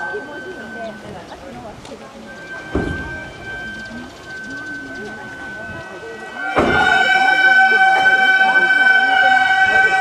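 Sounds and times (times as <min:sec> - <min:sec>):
high held wind instrument tone: 0:02.2 - 0:10.0.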